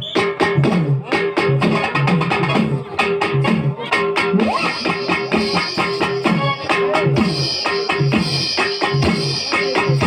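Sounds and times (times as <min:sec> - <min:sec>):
stepping bass line: 0:00.0 - 0:10.0
fast drum beat: 0:00.2 - 0:10.0.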